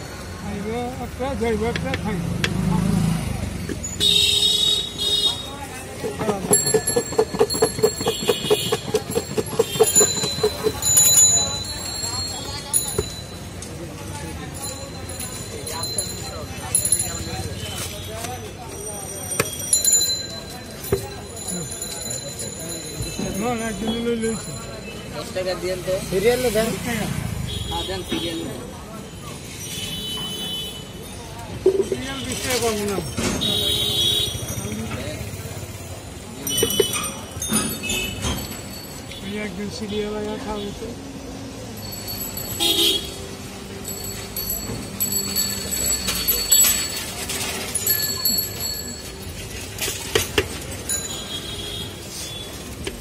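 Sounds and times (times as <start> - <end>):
indistinct chatter: 0.0 - 53.0
street traffic noise: 0.0 - 53.0
plastic jar knocking: 6.0 - 11.1, 31.6 - 32.1, 36.5 - 37.0
vehicle horn honk: 42.6 - 43.2.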